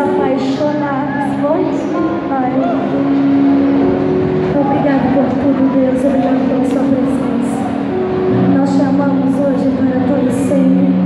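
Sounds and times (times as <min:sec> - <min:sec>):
crowd noise: 0:00.0 - 0:11.0
held keyboard chord: 0:00.0 - 0:11.0.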